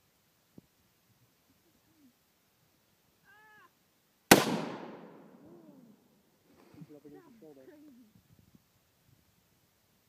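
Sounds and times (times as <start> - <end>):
rifle shot with echo: 4.3 - 5.4.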